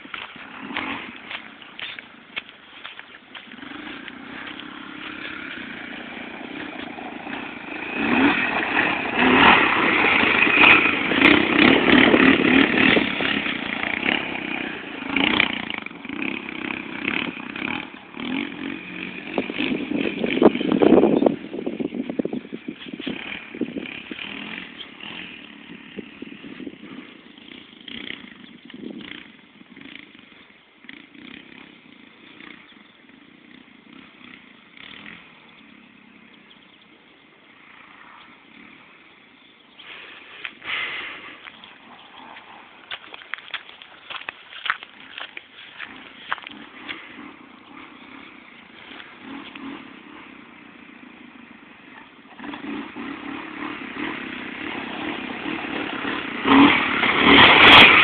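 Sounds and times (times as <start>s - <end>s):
off-road vehicle engine revving: 0.0s - 58.0s.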